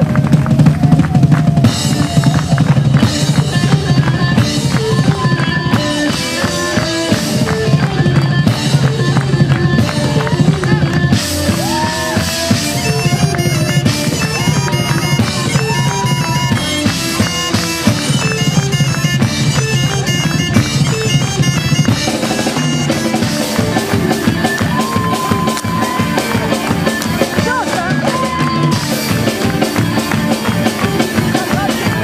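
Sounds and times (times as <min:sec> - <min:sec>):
bagpipes fast melody: 0:00.0 - 0:32.0
bass: 0:00.0 - 0:32.0
drum kit: 0:00.0 - 0:32.0
electric guitars: 0:00.0 - 0:32.0.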